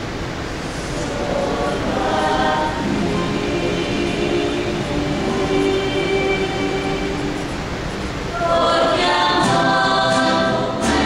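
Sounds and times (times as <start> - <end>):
choir with acoustic guitars: 0.0 - 11.0.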